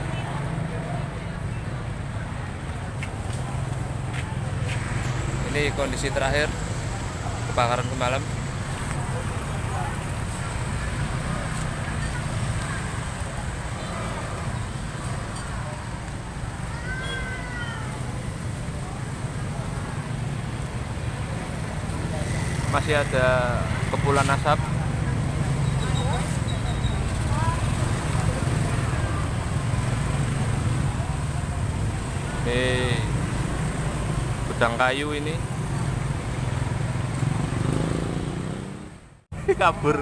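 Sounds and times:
motorcycle engines rumbling: 0:00.0 - 0:40.0
people talking: 0:03.4 - 0:10.2, 0:21.9 - 0:29.5, 0:39.4 - 0:40.0.

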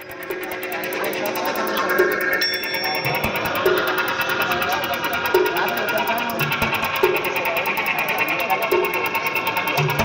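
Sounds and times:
experimental electronic music: 0:00.0 - 0:10.0
rapid high-pitched ticking pulse: 0:00.0 - 0:10.0
steady high electronic tone: 0:00.0 - 0:10.0.

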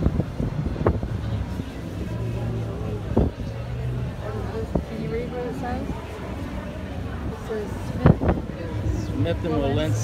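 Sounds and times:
faint voices chattering: 0:00.0 - 0:10.0.

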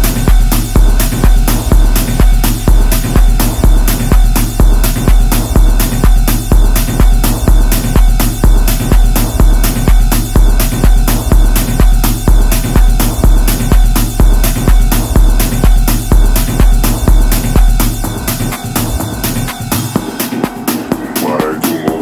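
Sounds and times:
deep sub-bass: 0:00.0 - 0:22.0
techno kick drum: 0:00.0 - 0:22.0.

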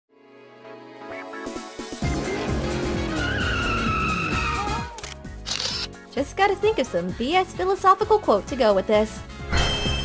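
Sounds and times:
car tyres squealing: 0:02.4 - 0:04.8
camera shutter: 0:04.9 - 0:05.9.

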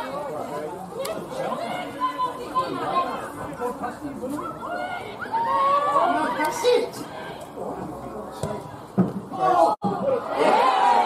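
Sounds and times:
people chattering and calling out: 0:00.0 - 0:11.0.

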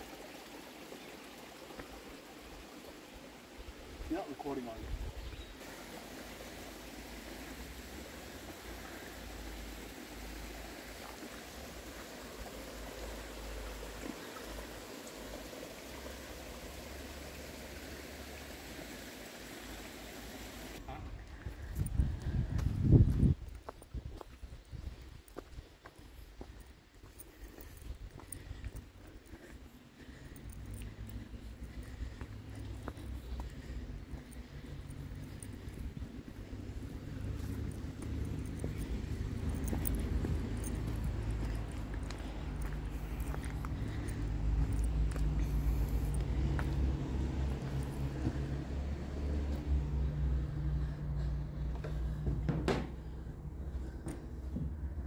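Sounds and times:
creek running over rocks: 0:00.0 - 0:51.7.

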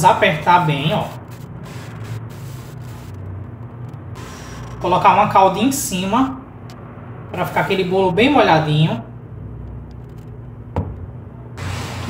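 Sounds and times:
low hum: 0:01.1 - 0:08.3.

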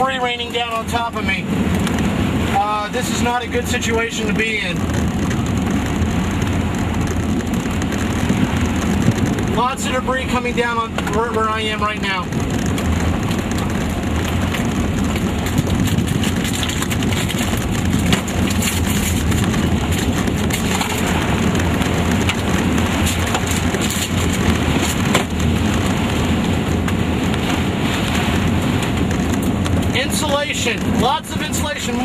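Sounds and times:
rain and debris hitting vehicle: 0:00.0 - 0:32.0
roar of wind and vehicle: 0:00.0 - 0:32.0.

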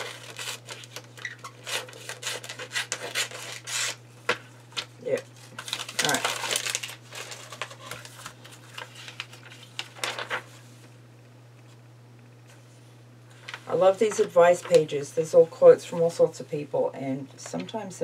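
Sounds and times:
magazine page turning: 0:00.0 - 0:04.0, 0:04.7 - 0:10.9, 0:13.3 - 0:14.9
paper rustling: 0:00.0 - 0:04.0, 0:04.7 - 0:10.9
steady low hum: 0:00.0 - 0:18.0.

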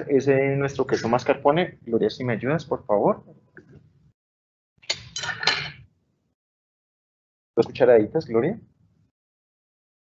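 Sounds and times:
utensils clinking against dish: 0:04.9 - 0:05.8.

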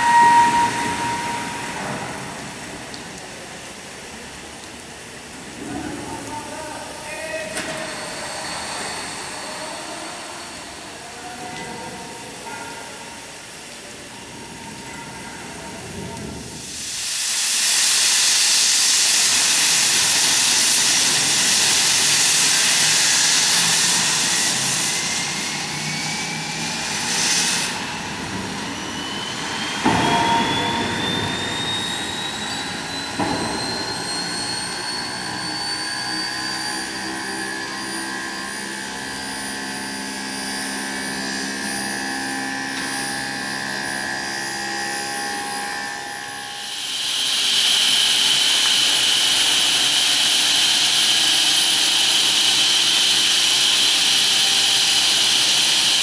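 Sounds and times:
thin rising whine: 0:00.0 - 0:03.2, 0:21.3 - 0:56.0
steam hissing loudly: 0:00.0 - 0:56.0.

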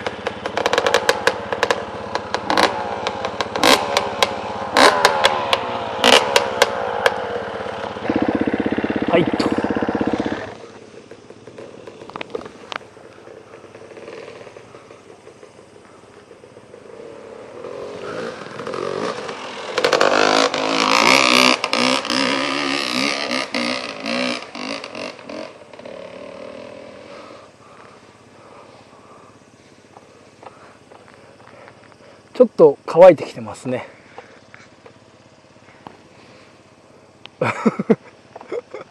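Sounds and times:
close engine cutting off: 0:00.0 - 0:38.9
off-road motorcycle engine: 0:00.0 - 0:38.9.

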